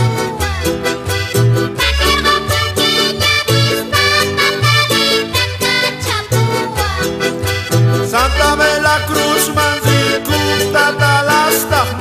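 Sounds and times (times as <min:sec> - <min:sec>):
accordion: 0:00.0 - 0:12.0
strummed guitar and charango: 0:00.0 - 0:12.0.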